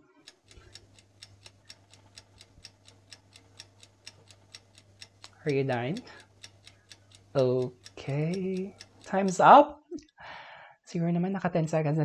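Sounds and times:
clock ticking faintly: 0:00.0 - 0:10.2.

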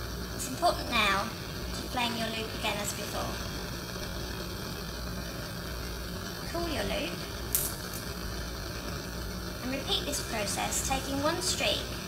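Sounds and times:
gas burner hissing and rumbling: 0:00.0 - 0:12.0.

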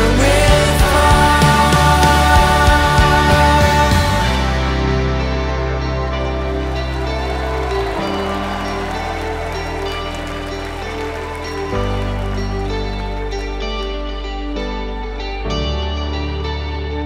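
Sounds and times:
band playing sustained chords: 0:00.0 - 0:17.0.

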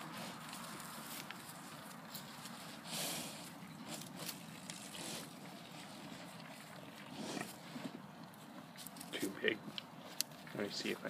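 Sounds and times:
calves snuffling: 0:00.0 - 0:11.0.

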